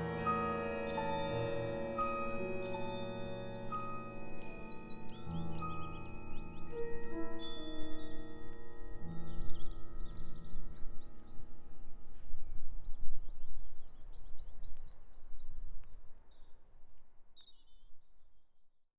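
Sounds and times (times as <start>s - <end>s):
mallet percussion chamber music: 0.0s - 11.4s
songbird singing: 0.0s - 18.7s
low outdoor background noise: 0.0s - 18.9s.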